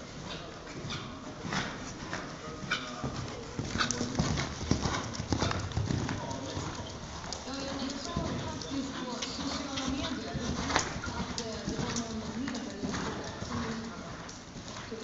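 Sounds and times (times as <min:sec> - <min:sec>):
horse hoofbeats on sand: 0:00.2 - 0:15.0.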